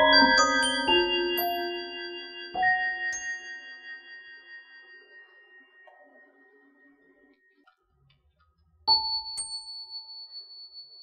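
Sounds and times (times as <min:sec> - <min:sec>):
bell-like ding: 0:00.0 - 0:06.4, 0:08.9 - 0:11.0.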